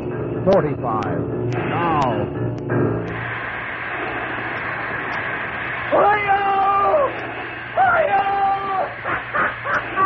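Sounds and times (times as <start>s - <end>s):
oil well gusher rushing hiss: 3.2s - 10.0s.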